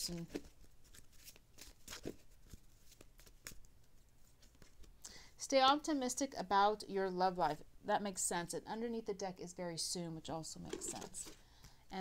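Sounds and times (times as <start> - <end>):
cards being shuffled: 0.1 - 5.0.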